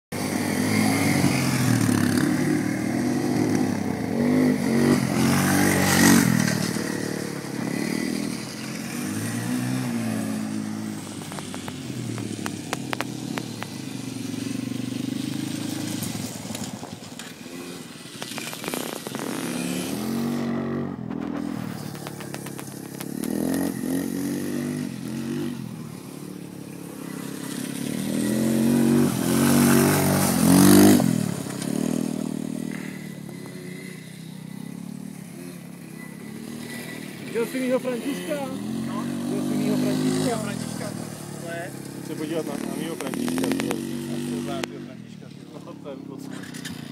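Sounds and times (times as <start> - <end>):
quad engine revving: 0.2 - 46.9.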